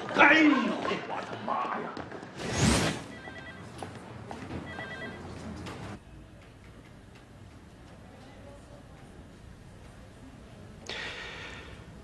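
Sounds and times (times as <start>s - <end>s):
electronic telephone ringing: 3.1s - 3.7s, 4.7s - 5.3s.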